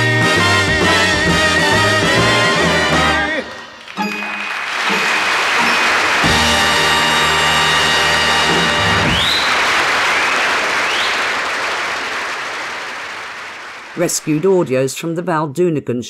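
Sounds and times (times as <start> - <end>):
band with brass holding chord: 0.0 - 9.2
audience applauding: 1.6 - 15.1.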